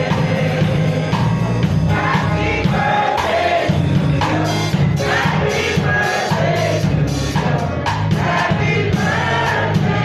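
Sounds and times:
bass line: 0.0 - 10.0
congregation singing birthday song: 0.0 - 10.0
drum kit: 0.0 - 10.0
keyboard: 0.0 - 10.0.

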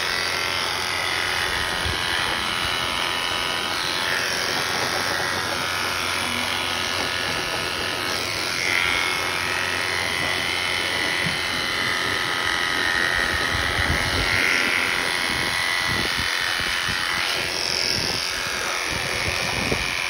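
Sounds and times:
electric shearing clippers running: 0.0 - 20.0.

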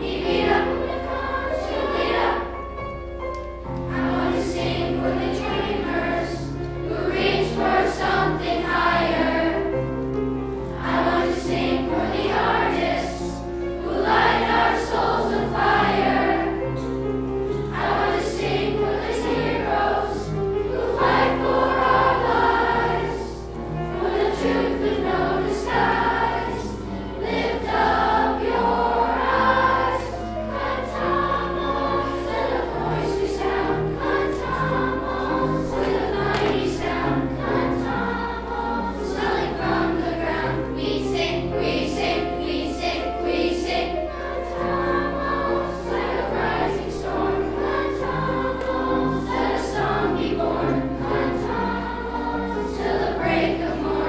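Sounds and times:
children's choir singing: 0.0 - 54.0
piano accompaniment: 0.0 - 54.0.

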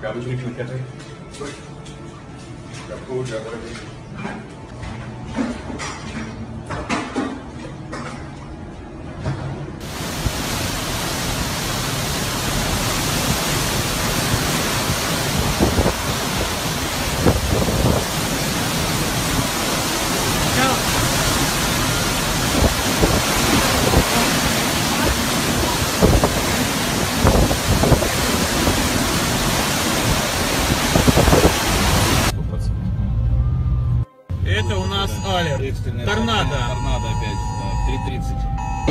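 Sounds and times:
driving rain: 9.8 - 32.4
storm wind: 9.8 - 32.4
wind gusts buffeting microphone: 9.9 - 32.3.

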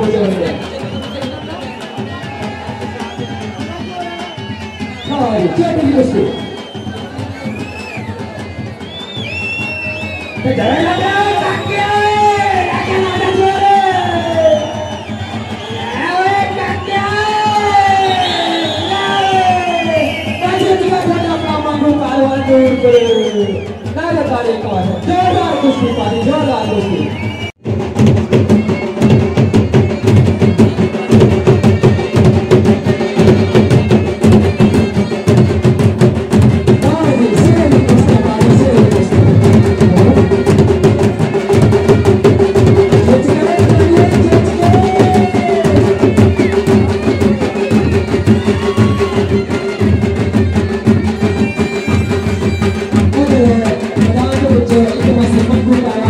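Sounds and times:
dhol drums beaten with sticks: 0.0 - 56.0.

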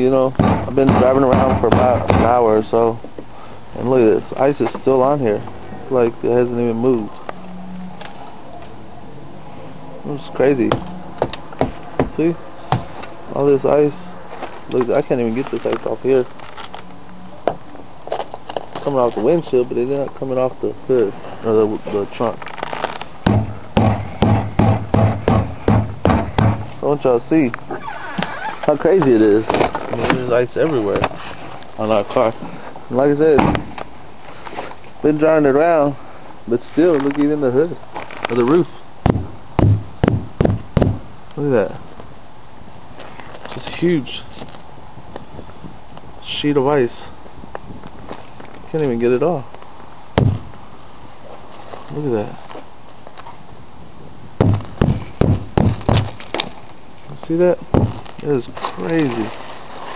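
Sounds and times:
sharp knock on car body: 0.4 - 2.4, 10.7 - 12.9, 23.2 - 26.7, 33.4 - 33.7, 39.0 - 41.1, 50.2 - 50.5, 54.4 - 56.2, 57.8 - 58.0
hand knocking on car trunk lid: 39.1 - 41.0, 54.4 - 56.1.

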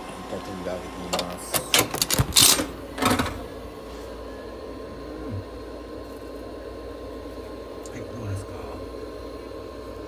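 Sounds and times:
electrical room hum: 0.0 - 10.0.

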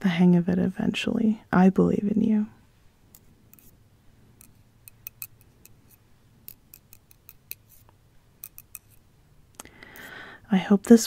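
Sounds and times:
knitting needles clicking: 4.4 - 9.0.

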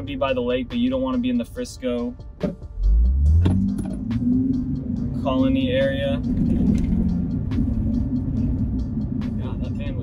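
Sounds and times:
car driving rumble: 0.0 - 10.0.

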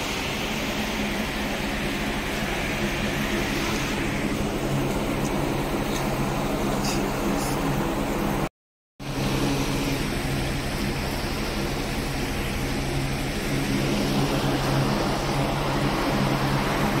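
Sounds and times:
machine hum with rumble: 0.0 - 17.0.

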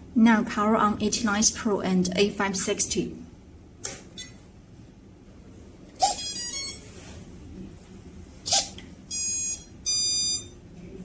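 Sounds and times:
short electronic chirps: 8.5 - 10.6
steady electronic beeps: 8.5 - 11.0.

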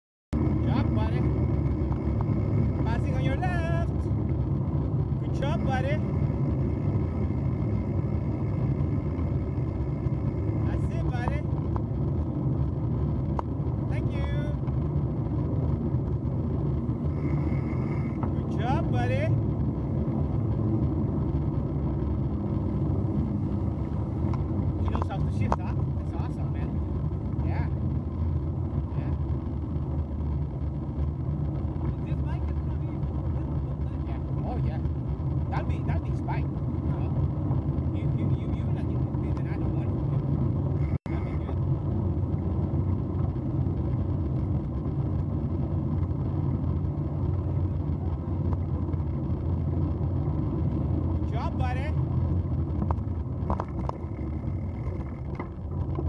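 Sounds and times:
wind buffeting microphone: 0.3 - 56.0
bicycle tyres rolling on gravel: 0.4 - 56.0.

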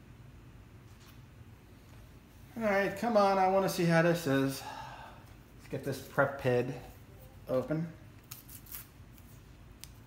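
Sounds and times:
wrapper crinkling and tearing: 8.2 - 8.9.

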